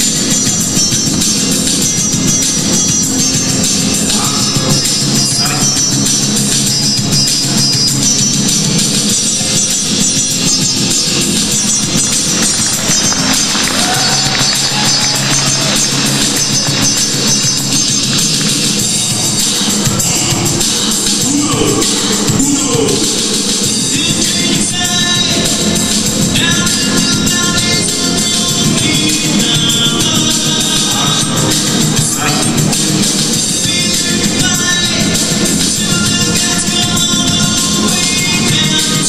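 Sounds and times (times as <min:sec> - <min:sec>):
loud music with percussion: 0:00.0 - 0:39.0.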